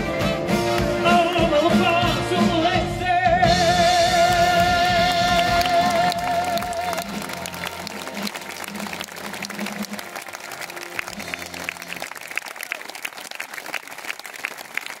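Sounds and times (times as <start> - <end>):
audience applauding: 4.1 - 15.0.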